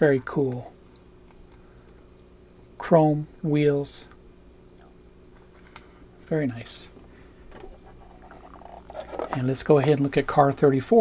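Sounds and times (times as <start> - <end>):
low steady hum: 0.0 - 11.0
plastic case rubbing and contacts: 7.6 - 9.6.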